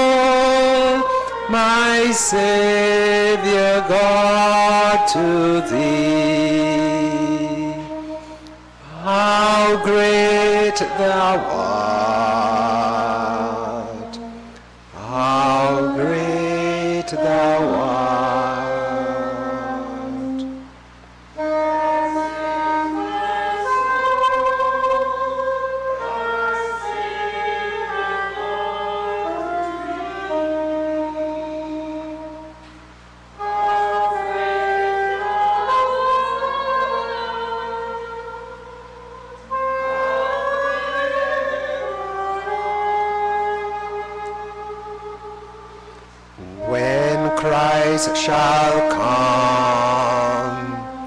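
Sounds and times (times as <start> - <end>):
hymn singing with vibrato: 0.0 - 51.0.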